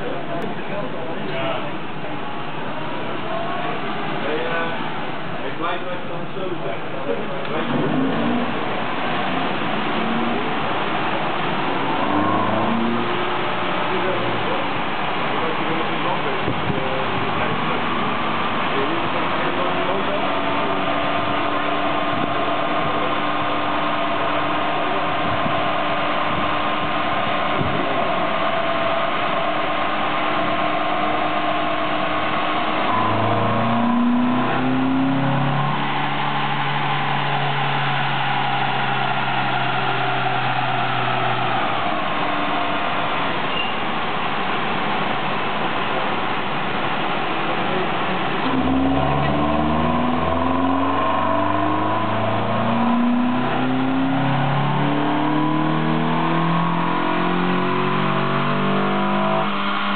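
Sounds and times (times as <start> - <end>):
car engine running under load: 0.0 - 59.9
whine of tyres and rollers: 0.0 - 59.9.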